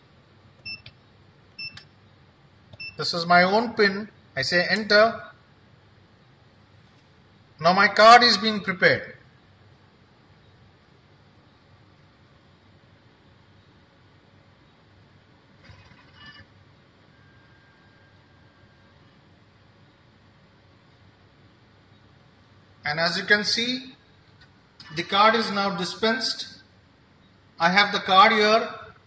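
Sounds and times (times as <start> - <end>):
keypad beeps: 0.6 - 1.0, 1.6 - 1.9, 2.7 - 3.0, 15.7 - 16.5.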